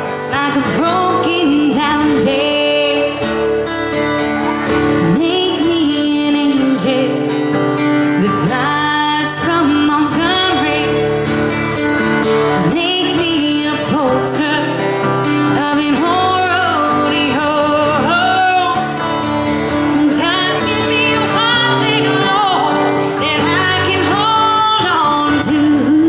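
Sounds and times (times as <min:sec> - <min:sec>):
strummed acoustic guitar: 0:00.0 - 0:26.0
woman singing slow melody: 0:00.1 - 0:03.4, 0:05.0 - 0:07.4, 0:08.0 - 0:11.2, 0:12.5 - 0:19.1, 0:19.7 - 0:26.0.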